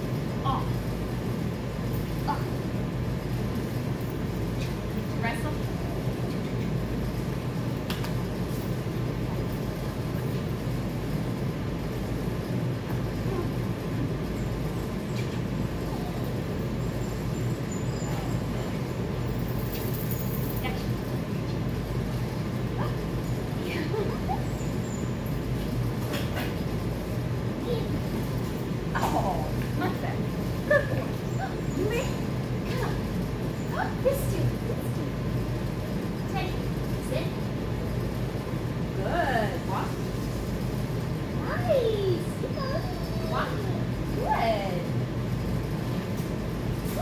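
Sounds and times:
low mechanical rumble: 0:00.0 - 0:47.0
faint squeaks and clicks: 0:12.4 - 0:27.0.

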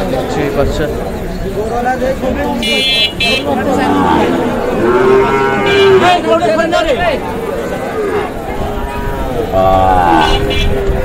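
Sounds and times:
crowd talking: 0:00.0 - 0:11.0
calf mooing: 0:03.7 - 0:06.2.

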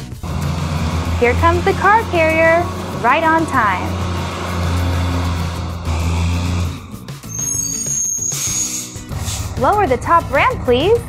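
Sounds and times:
background music: 0:00.0 - 0:11.0
truck engine rumble: 0:00.0 - 0:11.0
high brake squeal: 0:00.2 - 0:09.7
air brake hiss: 0:06.2 - 0:09.6.

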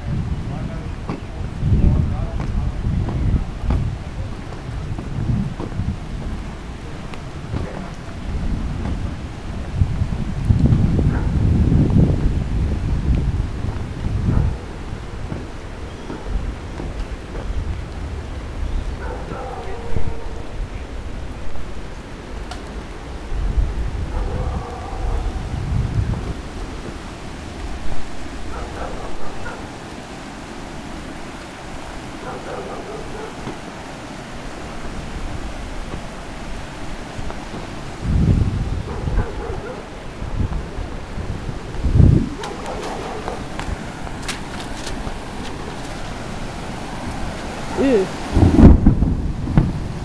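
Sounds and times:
faint voices: 0:00.0 - 0:09.7, 0:47.7 - 0:48.3
outdoor noise: 0:00.0 - 0:50.0
wind buffeting microphone: 0:00.0 - 0:50.0.

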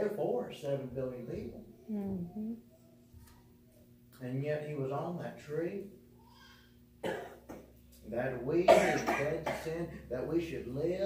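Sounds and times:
man coughing: 0:07.0 - 0:07.6, 0:08.6 - 0:10.1.

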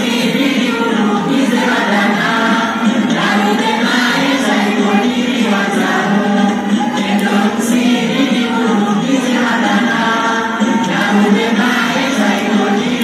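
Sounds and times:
women singing in chorus: 0:00.0 - 0:13.0.

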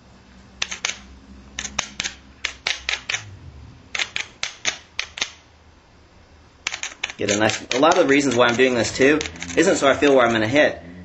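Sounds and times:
hammerstone tapping stone: 0:06.7 - 0:10.4.

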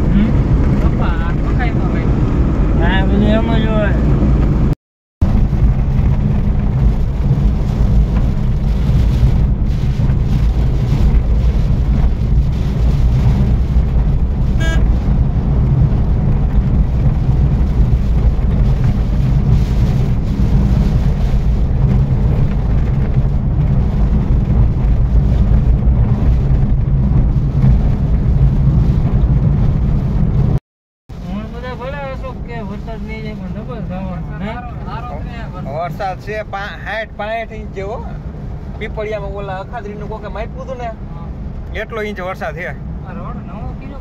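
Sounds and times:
car engine and tyre rumble: 0:00.0 - 0:44.0.

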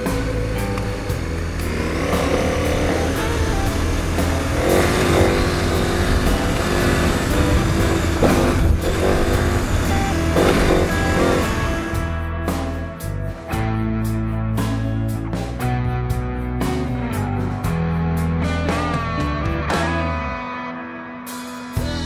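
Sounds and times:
motorcycle engine revving: 0:00.0 - 0:13.6
guitar background music: 0:00.0 - 0:22.0.

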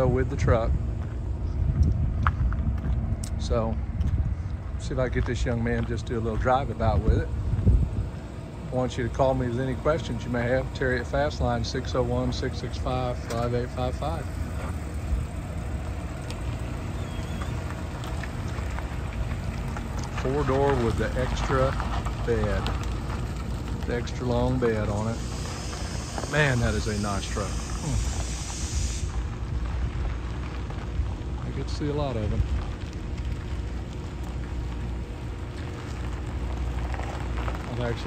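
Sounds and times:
truck engine running: 0:00.0 - 0:38.0
tyres crackling on gravel: 0:00.0 - 0:38.0.

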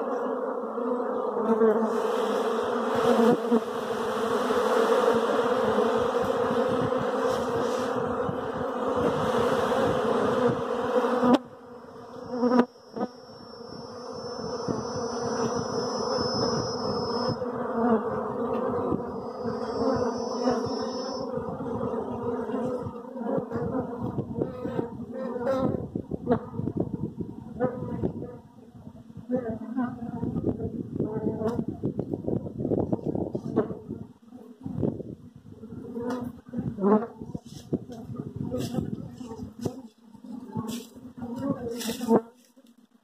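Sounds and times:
honeybees buzzing: 0:00.0 - 0:28.6, 0:35.6 - 0:42.5
faint thin high tone: 0:11.8 - 0:17.5, 0:19.1 - 0:21.3.

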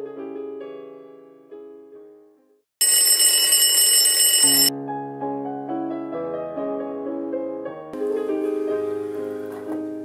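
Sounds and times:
soft piano music: 0:00.0 - 0:02.4, 0:04.7 - 0:10.0
alarm clock ringing: 0:02.8 - 0:04.7.

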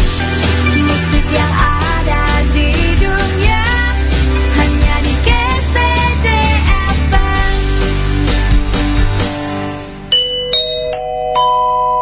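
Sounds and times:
song: 0:00.0 - 0:12.0
rising bell-like chime: 0:10.1 - 0:12.0.

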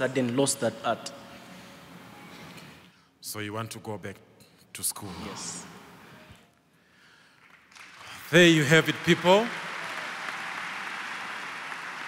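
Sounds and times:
audience applauding: 0:07.4 - 0:12.0.

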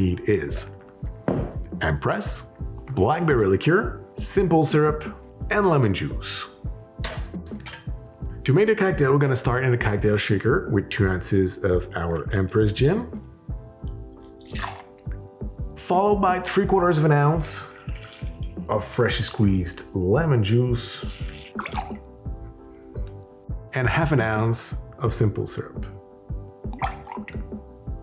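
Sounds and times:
background music with steady beat: 0:00.0 - 0:28.0
liquid pouring into a glass: 0:14.2 - 0:15.2, 0:17.6 - 0:18.6, 0:21.0 - 0:22.1, 0:26.7 - 0:27.5.

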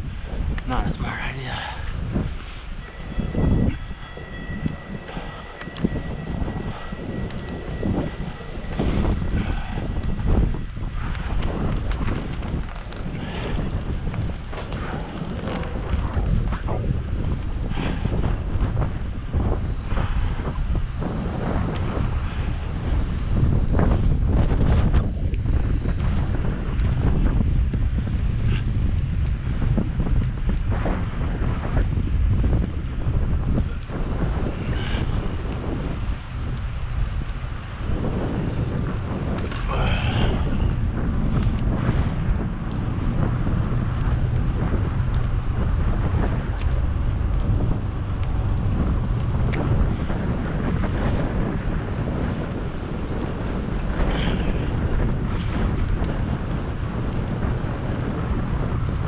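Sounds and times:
road and tyre rumble: 0:00.0 - 0:59.0
wind buffeting microphone: 0:00.0 - 0:59.0
thin steady whistle: 0:02.7 - 0:09.6.

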